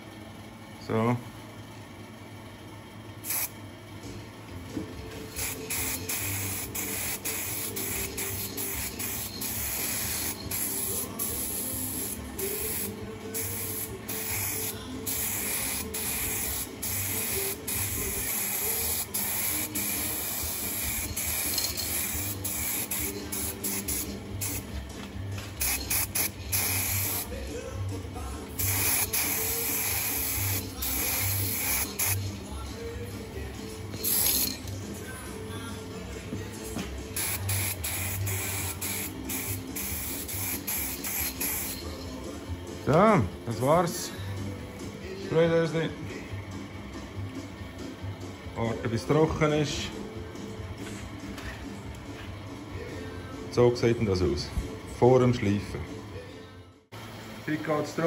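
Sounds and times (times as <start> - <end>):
aerosol spray can hissing: 3.3 - 3.6, 5.3 - 24.7, 25.6 - 27.3, 28.6 - 32.4, 34.0 - 34.6, 37.2 - 41.8.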